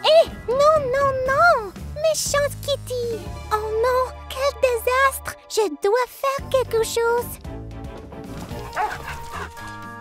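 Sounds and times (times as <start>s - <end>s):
gentle background music: 0.0s - 10.0s.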